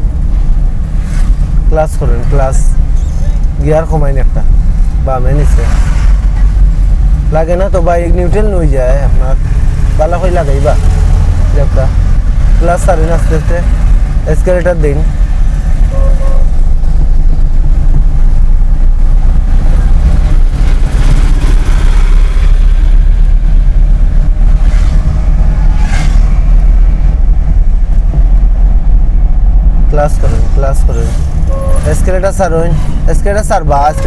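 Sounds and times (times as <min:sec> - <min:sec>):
car engine rumble: 0:00.0 - 0:34.0
road noise inside car: 0:00.0 - 0:34.0
person speaking: 0:29.9 - 0:34.0.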